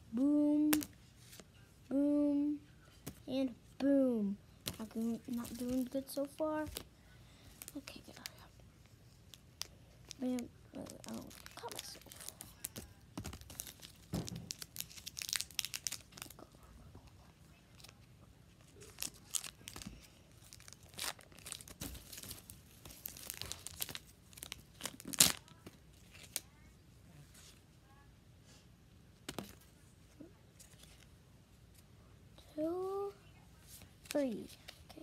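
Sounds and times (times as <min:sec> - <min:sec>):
foil wrapper crinkling and tearing: 0:04.7 - 0:06.8, 0:09.3 - 0:16.5, 0:18.6 - 0:26.4
sharp foil crackle: 0:09.3 - 0:16.4, 0:18.6 - 0:26.4.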